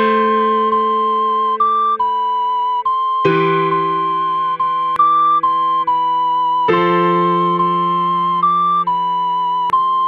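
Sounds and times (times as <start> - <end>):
ocarina melody: 0.0 - 10.0
sustained keyboard chord: 0.0 - 10.0.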